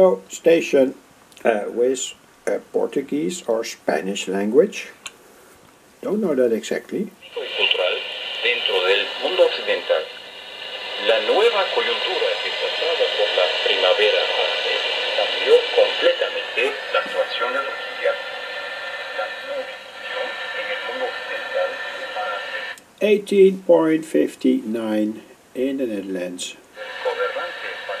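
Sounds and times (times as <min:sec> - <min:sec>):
speech over shortwave radio: 0:07.2 - 0:22.8, 0:26.8 - 0:28.0
steady radio whistle tones: 0:07.2 - 0:22.8, 0:26.8 - 0:28.0.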